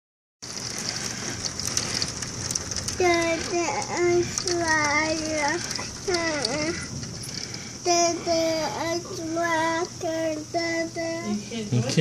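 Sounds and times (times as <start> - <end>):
heavy rain on window: 0.4 - 11.6.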